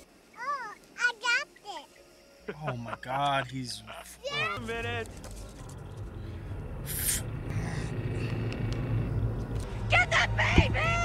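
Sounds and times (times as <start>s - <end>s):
low steady rumble: 2.8s - 11.0s.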